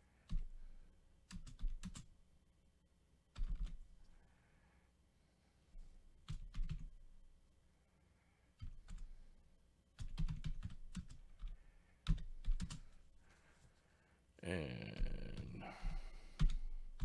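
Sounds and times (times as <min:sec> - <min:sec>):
computer keyboard typing: 0:01.3 - 0:02.1, 0:03.4 - 0:03.8, 0:06.2 - 0:06.9, 0:08.6 - 0:09.1, 0:10.0 - 0:13.0, 0:16.4 - 0:17.0.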